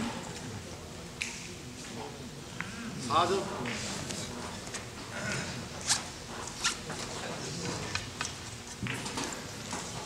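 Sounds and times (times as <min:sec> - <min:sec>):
murmur of background voices: 0:00.0 - 0:10.0.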